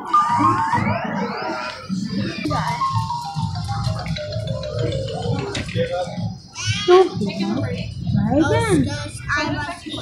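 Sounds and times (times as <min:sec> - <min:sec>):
electronic arcade music: 0:00.0 - 0:07.7
low background din: 0:00.0 - 0:10.0.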